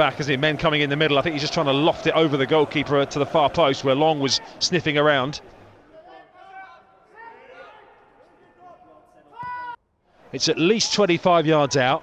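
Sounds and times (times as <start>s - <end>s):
players shouting: 0.0s - 9.8s.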